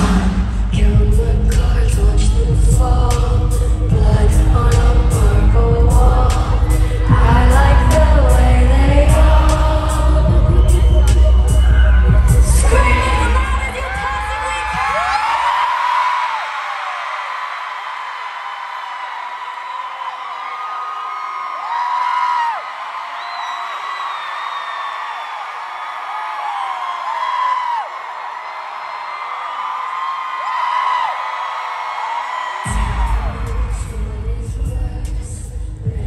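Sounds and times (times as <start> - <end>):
live pop music: 0.0 - 15.6, 32.6 - 36.0
crowd singing and whooping: 0.0 - 16.4, 29.4 - 36.0.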